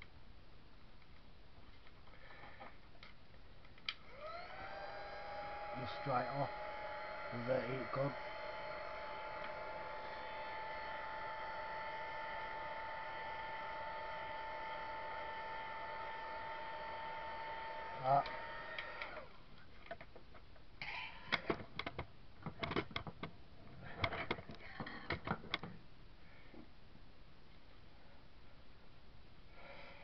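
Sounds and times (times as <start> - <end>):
heat gun whining: 3.9 - 19.4.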